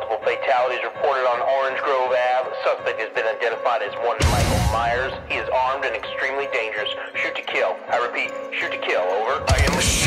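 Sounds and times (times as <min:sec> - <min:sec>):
soundtrack music: 0:00.0 - 0:10.0
thin radio-like voice: 0:01.7 - 0:10.0.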